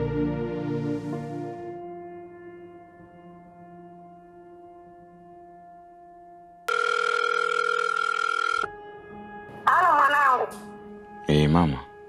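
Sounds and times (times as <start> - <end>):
soft background music: 0.0 - 12.0
telephone ringing tone: 6.7 - 8.7.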